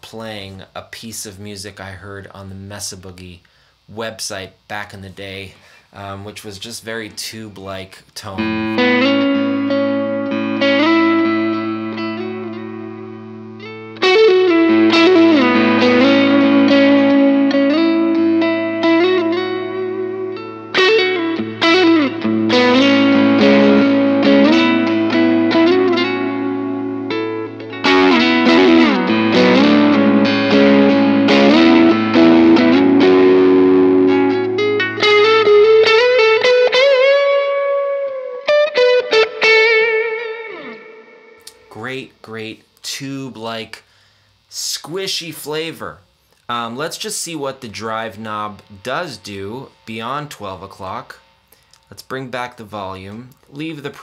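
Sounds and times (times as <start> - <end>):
overdriven electric guitar: 8.4 - 41.7.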